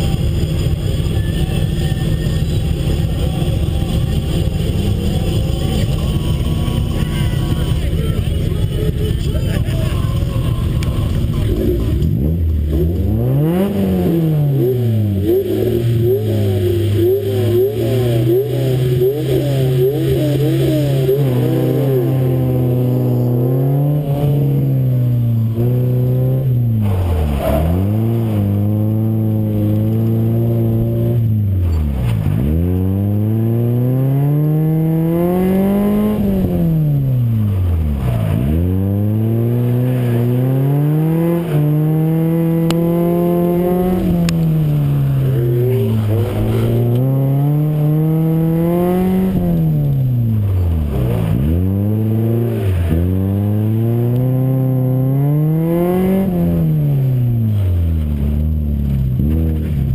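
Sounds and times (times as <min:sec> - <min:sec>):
car engine revving hard: 0:02.0 - 0:59.9.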